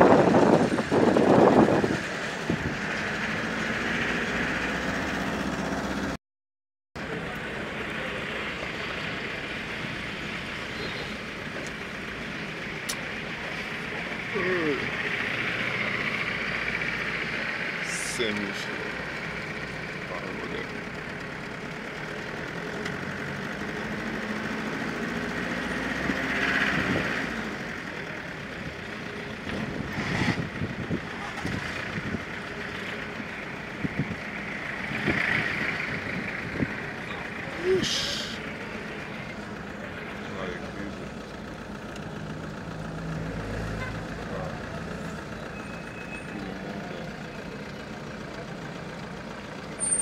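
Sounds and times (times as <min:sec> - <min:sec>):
vehicles passing: 0:00.0 - 0:06.2, 0:07.0 - 0:50.0
road noise from inside car: 0:07.0 - 0:50.0.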